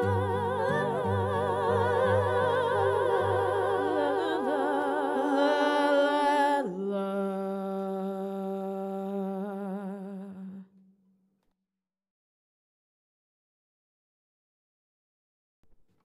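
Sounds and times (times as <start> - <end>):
woman singing with vibrato: 0.0 - 10.7.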